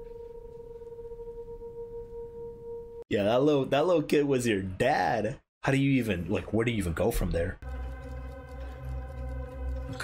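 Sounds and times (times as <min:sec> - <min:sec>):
fainter higher tone: 0:00.0 - 0:03.0.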